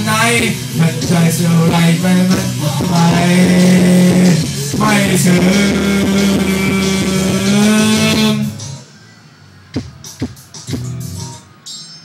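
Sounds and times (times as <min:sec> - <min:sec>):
karaoke backing music with guitar: 0:00.0 - 0:11.7.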